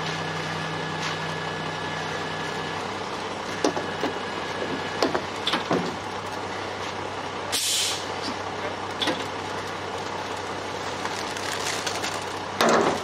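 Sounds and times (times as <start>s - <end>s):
concrete truck engine running: 0.0s - 13.0s
air hiss: 7.5s - 8.1s.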